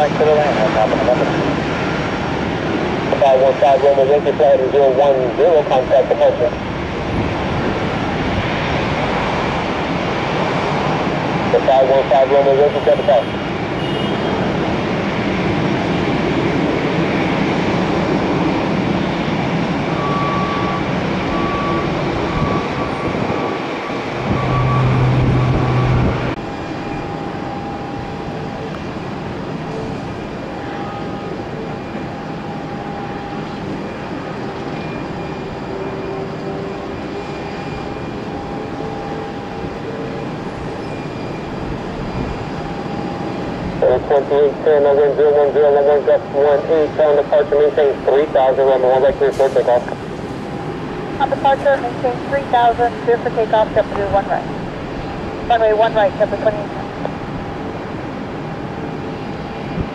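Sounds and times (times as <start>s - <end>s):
jet engine noise on approach: 0.0s - 59.9s
jet engines running: 0.0s - 59.9s
low hum: 21.4s - 29.0s.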